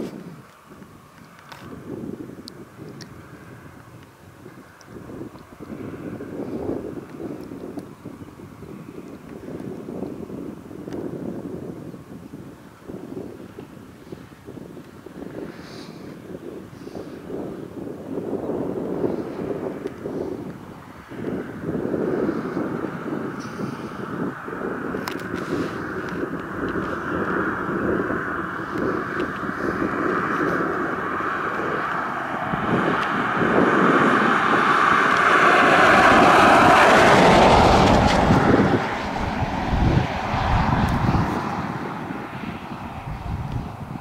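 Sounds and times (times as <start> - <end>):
gusty wind buffeting microphone: 0.0 - 44.0.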